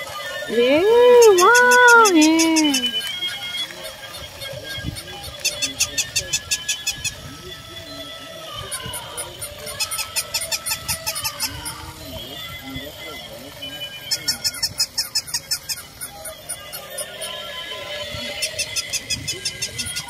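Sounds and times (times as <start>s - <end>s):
tinny electronic toy tunes: 0.0s - 20.0s.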